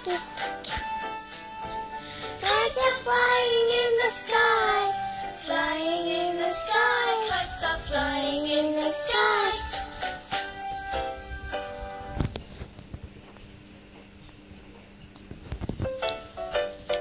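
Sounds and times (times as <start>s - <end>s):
children's song music: 0.0s - 12.3s
child-like voice singing: 2.4s - 9.8s.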